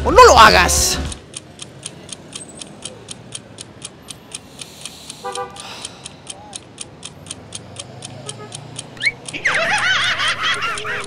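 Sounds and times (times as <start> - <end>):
low traffic noise: 0.0 - 11.0
steady ticking: 0.0 - 11.0
car horn toot: 5.2 - 5.6.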